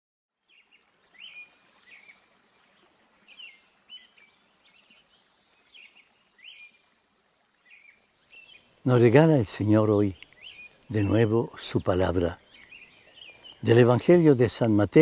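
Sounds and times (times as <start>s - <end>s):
faint high bird chirps: 0.5s - 15.0s.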